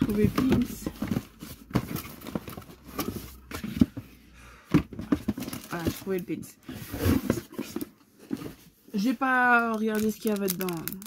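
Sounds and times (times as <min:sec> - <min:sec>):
hands rummaging through cardboard box: 0:00.0 - 0:11.0.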